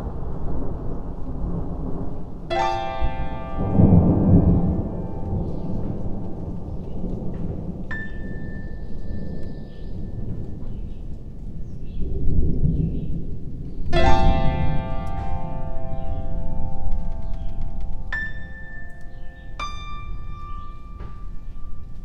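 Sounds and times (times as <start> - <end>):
rolling thunder: 0.0 - 22.0
steady rain: 0.0 - 22.0.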